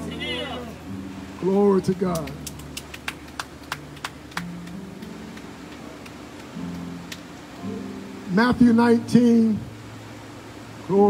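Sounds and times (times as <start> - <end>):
soft low sustained instrument notes: 0.0 - 2.5
hand claps: 1.9 - 7.3.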